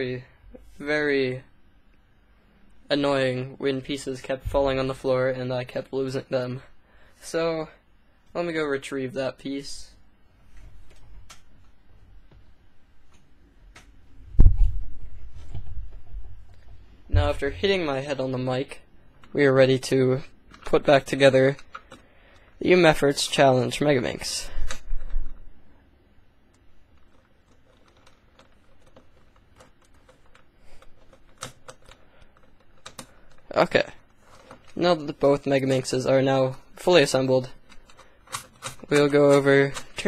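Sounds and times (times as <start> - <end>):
plastic puzzle pieces clicking: 37.6 - 40.0.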